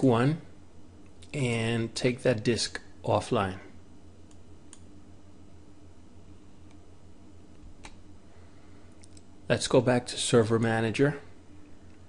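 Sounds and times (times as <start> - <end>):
low electrical hum: 0.0 - 12.0
computer mouse clicks: 4.3 - 4.9.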